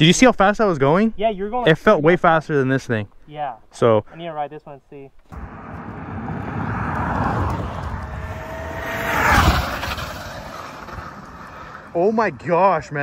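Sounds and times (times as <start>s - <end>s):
tyre and wind noise: 5.2s - 13.0s
car and electric dirt bike passing: 5.3s - 13.0s.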